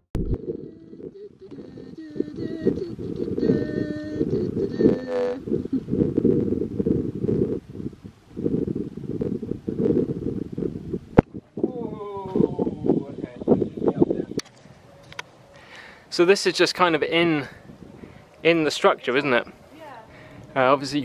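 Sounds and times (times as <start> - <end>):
faint pitched sounds: 0.2 - 6.6, 11.2 - 21.0
wind buffeting microphone: 0.2 - 15.5, 16.6 - 21.0.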